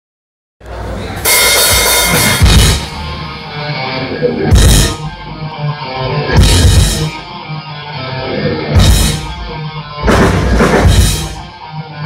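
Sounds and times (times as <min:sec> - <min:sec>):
live metal band playing: 0:00.7 - 0:12.0
loud cymbal crash: 0:01.2 - 0:03.2
heavy bass drum hit: 0:01.3 - 0:03.2, 0:04.5 - 0:05.1, 0:06.4 - 0:07.1, 0:08.8 - 0:11.5.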